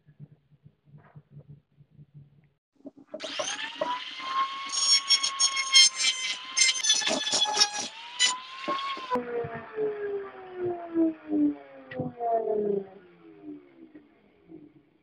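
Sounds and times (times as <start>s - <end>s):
rotary tool whine: 3.1s - 14.0s
grinding stone rasping on steel: 3.2s - 9.2s.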